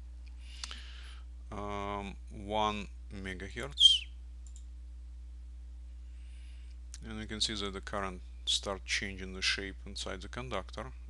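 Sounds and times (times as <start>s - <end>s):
low electrical hum: 0.0s - 11.0s
computer mouse click: 4.4s - 4.7s.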